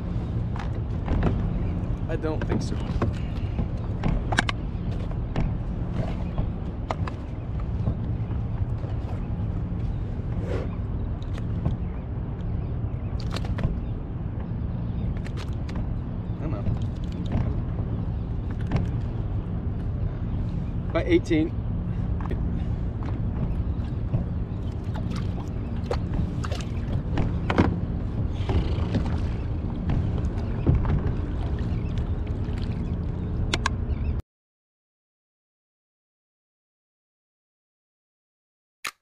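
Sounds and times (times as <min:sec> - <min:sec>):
steady low rumble: 0:00.0 - 0:34.2.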